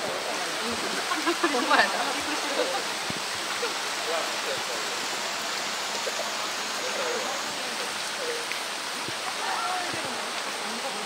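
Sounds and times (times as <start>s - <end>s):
faint voices murmuring: 0.0s - 11.0s
heavy rain on pool water: 0.0s - 11.0s.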